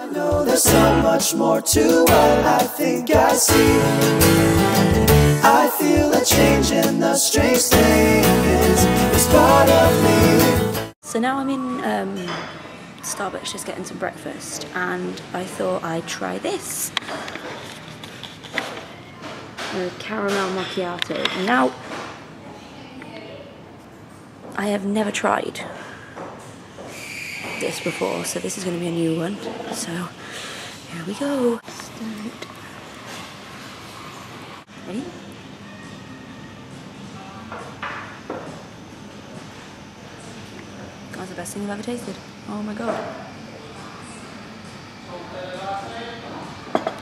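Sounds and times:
coffee shop room hum: 0:00.0 - 0:47.0.

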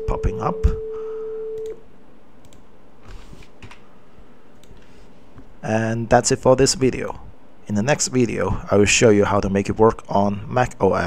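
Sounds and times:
sine-wave test tone: 0:00.0 - 0:01.8
faint clicks: 0:02.4 - 0:02.7, 0:04.6 - 0:04.8.

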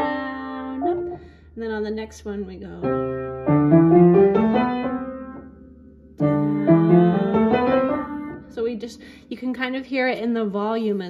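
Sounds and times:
upright piano playing scales: 0:00.0 - 0:09.2.

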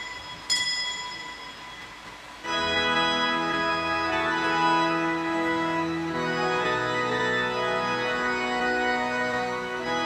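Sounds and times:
small bell ringing: 0:00.0 - 0:01.9.

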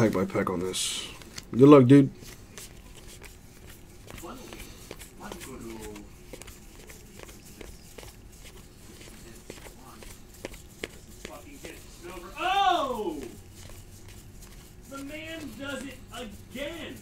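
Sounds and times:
trading cards ticking and sliding: 0:00.0 - 0:17.0.

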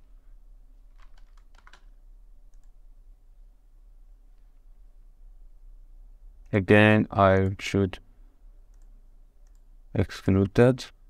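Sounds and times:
keyboard keys clicking: 0:01.0 - 0:01.9.

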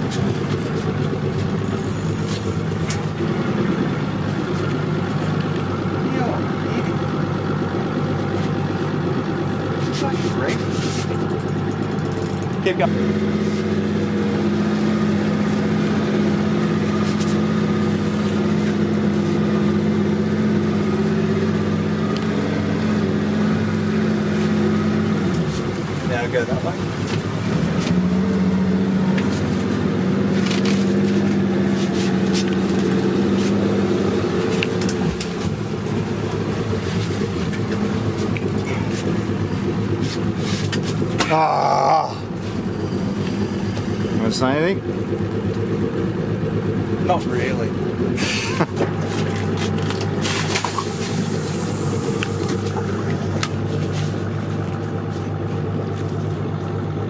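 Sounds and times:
boat engine running: 0:00.0 - 0:57.0.

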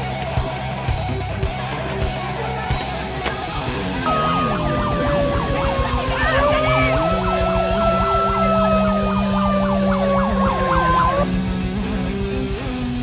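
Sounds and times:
rock music: 0:00.0 - 0:13.0
wailing siren: 0:04.0 - 0:11.3
yelping siren sweep: 0:04.0 - 0:11.3.

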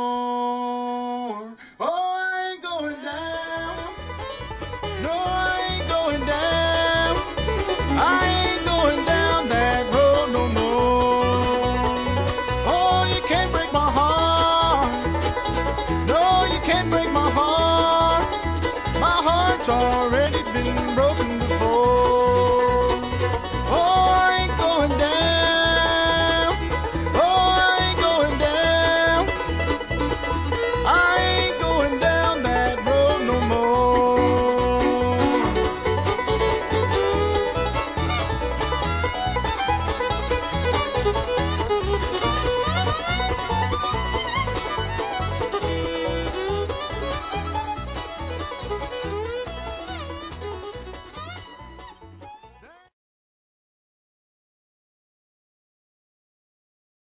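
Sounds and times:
banjo picking: 0:02.9 - 0:52.9
fiddle sliding notes: 0:03.1 - 0:52.8
guitar rhythm: 0:03.3 - 0:52.7.

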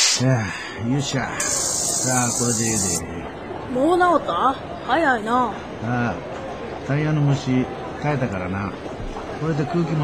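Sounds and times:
air hissing into bicycle tyre: 0:01.4 - 0:03.0.

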